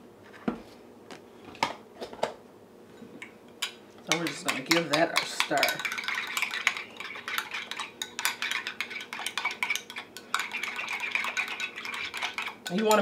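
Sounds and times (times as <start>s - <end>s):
spoon clinking and scraping glass bowl: 3.6s - 13.0s.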